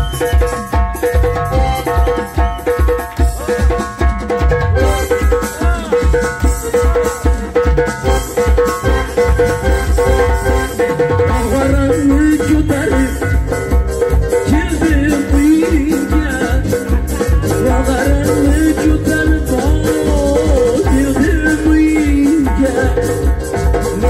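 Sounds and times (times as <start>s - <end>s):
electronic drum beat: 0.0s - 24.0s
keyboard lead melody bending: 0.0s - 24.0s.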